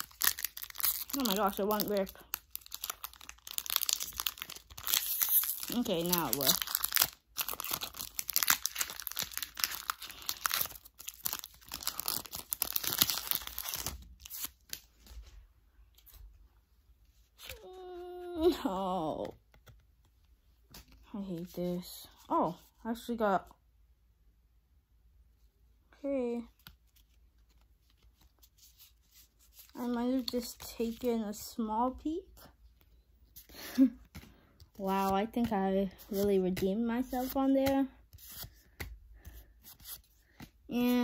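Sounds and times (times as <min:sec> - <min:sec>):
foil wrapper tearing and crinkling: 0:00.0 - 0:14.8
trading cards rustling: 0:00.0 - 0:15.3, 0:33.3 - 0:41.0.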